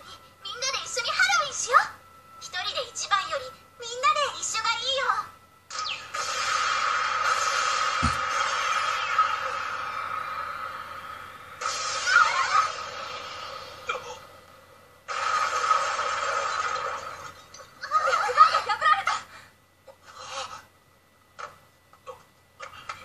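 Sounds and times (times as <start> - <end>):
low thud: 8.0 - 8.3.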